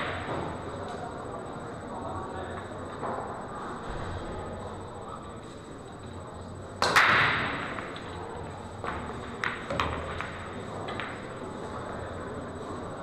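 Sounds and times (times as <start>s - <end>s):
pool balls clicking: 6.8s - 11.5s
cue ball cracking into balls: 8.9s - 11.3s.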